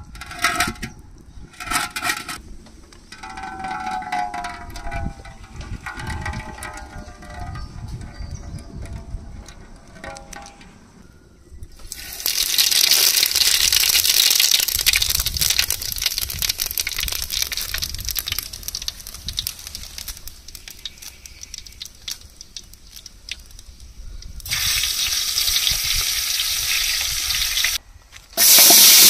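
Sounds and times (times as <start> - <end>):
leaves sizzling in hot oil: 11.9 - 23.5, 24.4 - 27.8, 28.4 - 29.0.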